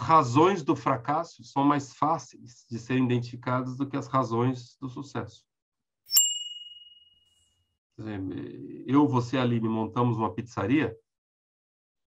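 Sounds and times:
bright bell ding: 6.1 - 7.2.

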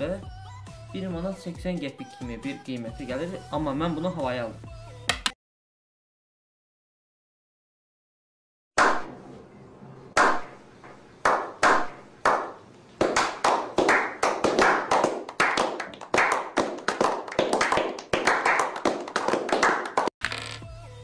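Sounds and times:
people clapping with echo: 11.2 - 20.1.

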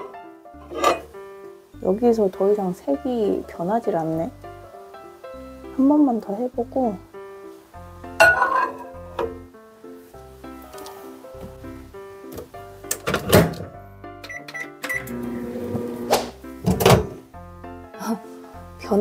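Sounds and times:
light background music: 0.0 - 19.0
microwave running hum: 15.0 - 16.1
microwave door thunking: 16.6 - 17.2.

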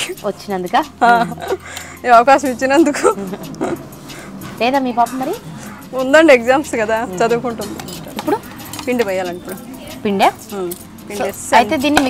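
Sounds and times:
woman speaking: 0.0 - 3.3, 4.6 - 12.0
low background chatter: 2.4 - 12.0.

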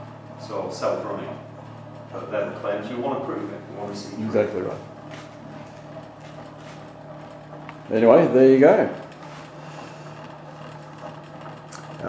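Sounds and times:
machine hum with overtones: 0.0 - 12.0.

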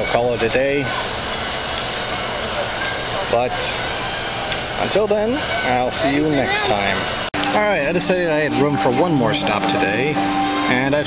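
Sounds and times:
speech: 0.0 - 0.9, 2.5 - 3.8, 4.8 - 11.0
steady background noise: 0.0 - 11.0.

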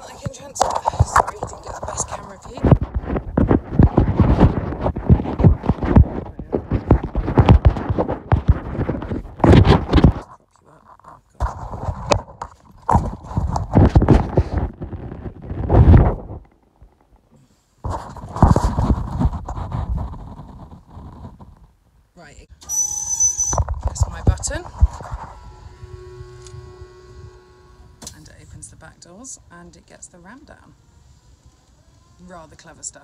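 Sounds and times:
phone handling rustles and knocks: 0.3 - 10.3, 11.4 - 17.2
electric motor whine: 24.2 - 28.4, 29.1 - 32.4.

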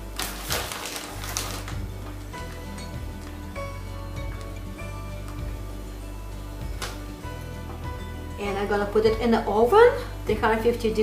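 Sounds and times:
plastic bag crinkling: 0.0 - 3.5
background music with bass line: 0.0 - 11.0.

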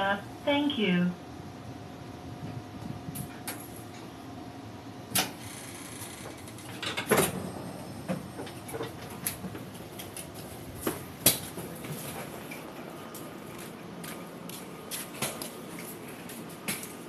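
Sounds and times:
train door clunk: 5.1 - 12.6.

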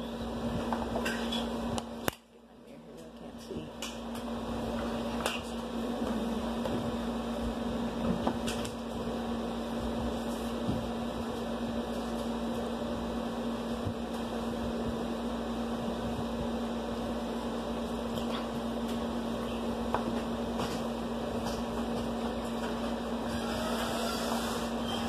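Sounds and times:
appliance motor humming: 3.0 - 25.0.

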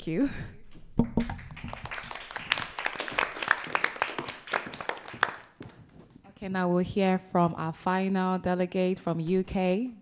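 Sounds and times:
small group applauding: 1.0 - 5.9.

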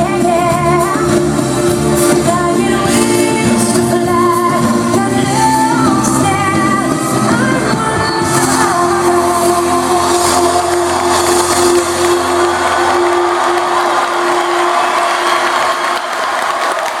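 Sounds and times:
song long held note: 8.2 - 16.4
audience applauding and cheering: 8.7 - 17.0.

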